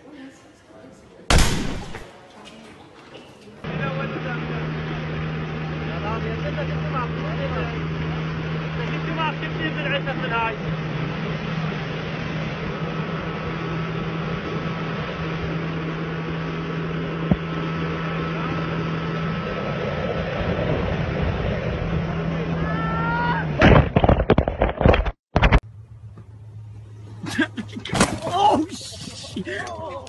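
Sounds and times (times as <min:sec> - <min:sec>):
motorboat engine hum: 0:03.6 - 0:30.0
wind noise: 0:19.3 - 0:25.6.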